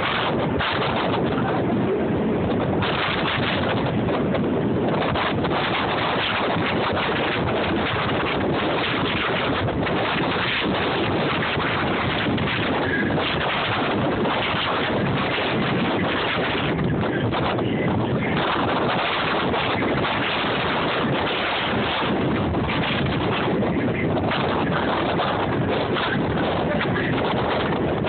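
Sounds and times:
train running noise: 0:00.0 - 0:28.0
wind buffeting microphone: 0:00.0 - 0:28.0.

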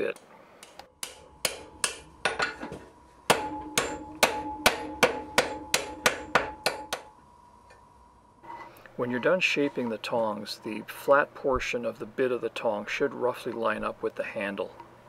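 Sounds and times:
hammer striking iron on anvil: 0:00.6 - 0:07.1.

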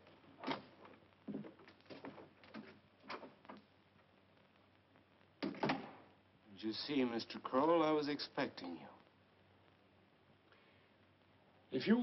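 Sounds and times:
light knocks and steps: 0:00.0 - 0:04.1
door shutting: 0:05.4 - 0:06.0
wooden door opening: 0:05.4 - 0:06.0.

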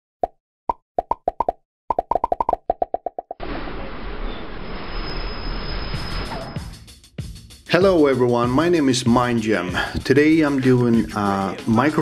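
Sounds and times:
pitched plops: 0:00.2 - 0:03.4.

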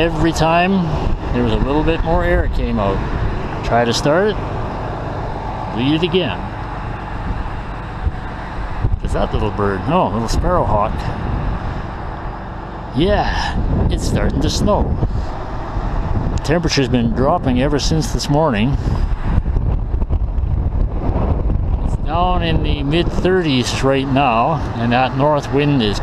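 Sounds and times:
low even rumble: 0:00.0 - 0:26.0
wind blowing across microphone: 0:00.0 - 0:26.0.

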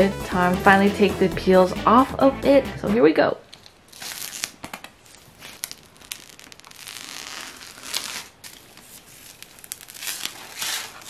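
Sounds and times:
plastic film peeling and crackling: 0:03.5 - 0:11.0.

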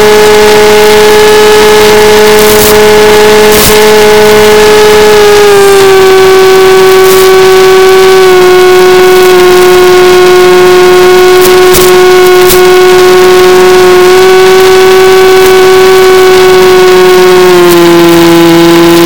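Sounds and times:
electric motor and propeller whining: 0:00.0 - 0:19.0.

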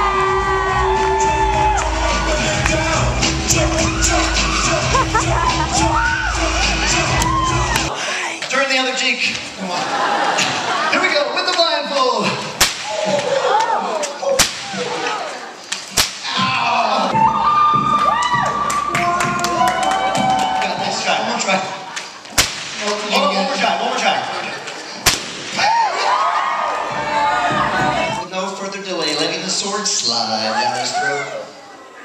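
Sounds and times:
audience voices and whoops: 0:00.0 - 0:08.0, 0:12.8 - 0:15.6, 0:16.2 - 0:21.5, 0:25.5 - 0:28.2
balloon bursting: 0:12.5 - 0:13.2, 0:25.0 - 0:25.8
bullwhip cracks: 0:12.6 - 0:13.4, 0:14.0 - 0:15.1, 0:15.7 - 0:16.3, 0:22.3 - 0:23.0, 0:25.0 - 0:25.6.

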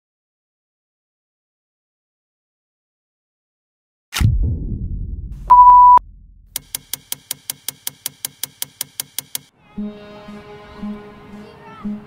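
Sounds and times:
low rumble: 0:04.2 - 0:06.6
even mechanical ticking: 0:06.5 - 0:09.5.

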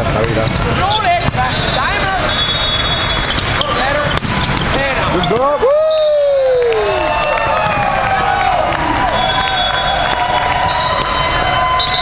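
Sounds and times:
sneaker squeaks on court: 0:00.0 - 0:05.5
volleyball hits: 0:00.2 - 0:05.8, 0:07.4 - 0:12.0.

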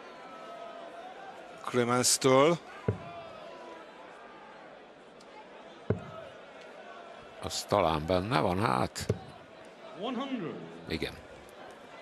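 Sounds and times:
dart hitting dartboard: 0:05.9 - 0:06.2.

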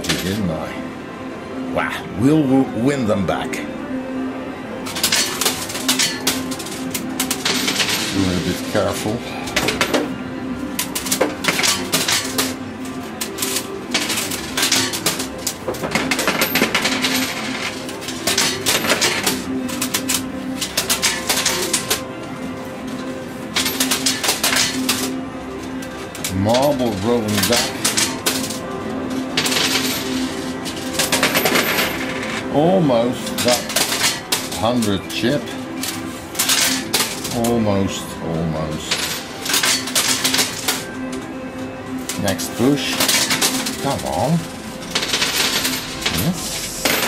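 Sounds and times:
coins clicking and clinking: 0:00.0 - 0:00.6, 0:04.8 - 0:37.6, 0:38.6 - 0:47.0.

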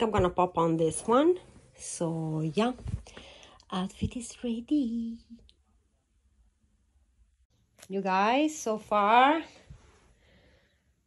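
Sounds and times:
woman's voice: 0:00.0 - 0:05.5, 0:07.8 - 0:09.8.

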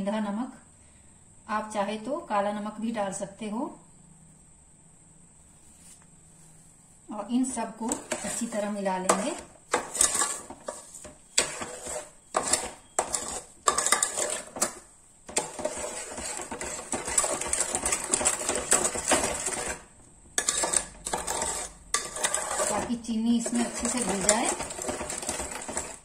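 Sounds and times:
spoon scraping metal pot: 0:07.8 - 0:26.0.

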